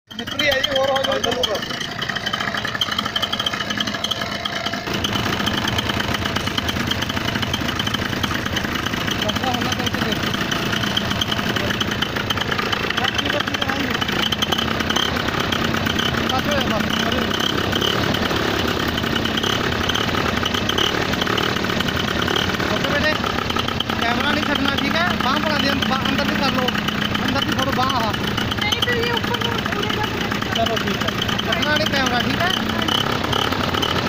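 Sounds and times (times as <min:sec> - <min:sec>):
engine and propeller running: 0:00.1 - 0:34.0.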